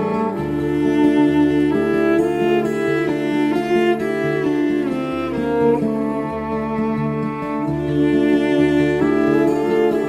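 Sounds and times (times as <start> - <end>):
bowed strings melody: 0.0 - 10.0.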